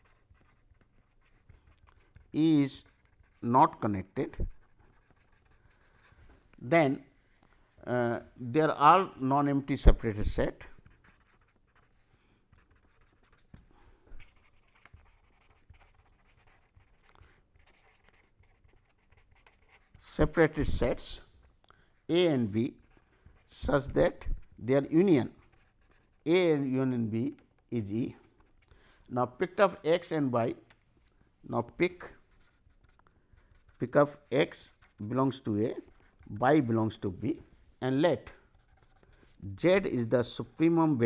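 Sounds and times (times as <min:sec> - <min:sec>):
pen scratching on paper: 0:00.0 - 0:06.3, 0:10.1 - 0:21.2, 0:22.3 - 0:26.3, 0:32.0 - 0:37.0, 0:38.3 - 0:40.8.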